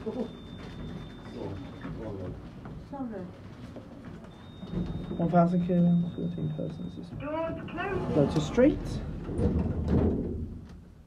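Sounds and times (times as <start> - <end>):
lift doors sliding closed: 7.4 - 10.6.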